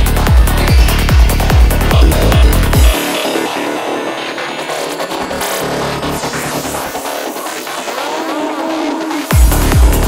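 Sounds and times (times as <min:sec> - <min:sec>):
swooping synth lines: 0:01.1 - 0:09.5.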